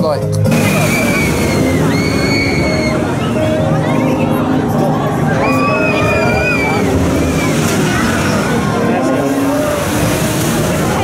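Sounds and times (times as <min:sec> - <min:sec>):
amusement ride rushing: 0:00.2 - 0:11.0
long high-pitched sound: 0:00.5 - 0:09.7.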